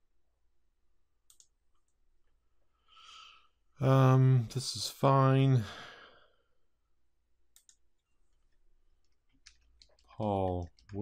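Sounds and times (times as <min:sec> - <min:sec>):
faint click: 0:01.3 - 0:02.0.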